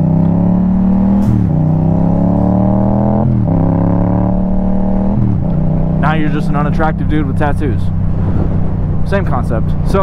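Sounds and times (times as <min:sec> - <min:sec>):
motorcycle engine accelerating: 0:00.0 - 0:10.0.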